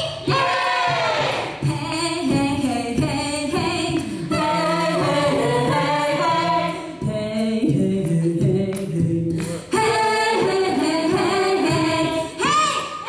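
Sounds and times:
female a cappella group singing: 0.0s - 13.0s.

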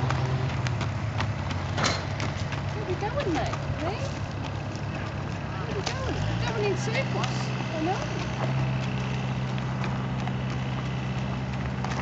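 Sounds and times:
footsteps on gravel: 0.0s - 12.0s
horse hooves crunching on gravel: 0.0s - 12.0s.

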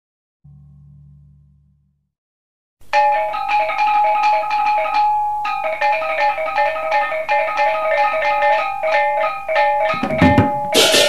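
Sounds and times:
metallophones ringing strikes: 3.0s - 11.0s.

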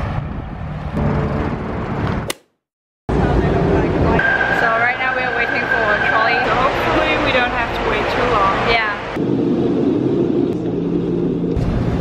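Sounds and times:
voices: 3.2s - 9.0s
trolley car high-pitched squeal: 4.2s - 7.0s.

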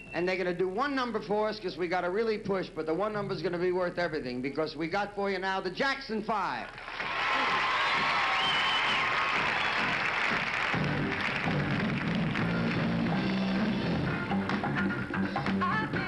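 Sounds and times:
audience applauding and cheering: 6.7s - 15.7s
live band playing upbeat music: 8.9s - 16.0s.

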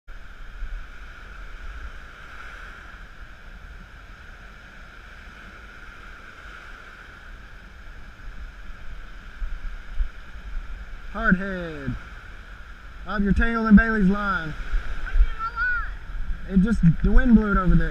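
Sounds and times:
surf breaking on beach: 0.1s - 17.9s
wind buffeting microphone: 6.4s - 17.9s.

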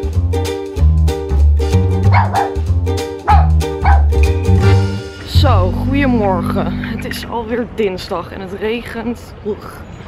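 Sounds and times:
upbeat plucked-string music: 0.0s - 8.1s
small dog barking: 2.1s - 2.6s, 3.3s - 4.2s.

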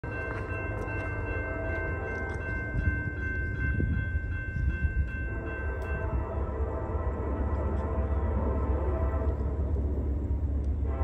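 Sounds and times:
crossing warning bell ringing: 0.0s - 11.0s
freight train rumble: 0.0s - 11.0s.

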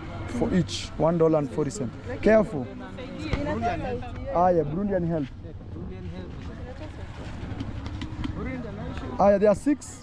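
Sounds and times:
people talking quietly: 0.0s - 10.0s.

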